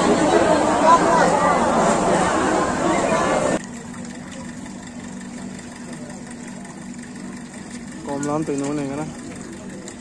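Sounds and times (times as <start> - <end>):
low engine hum at idle: 0.0 - 10.0.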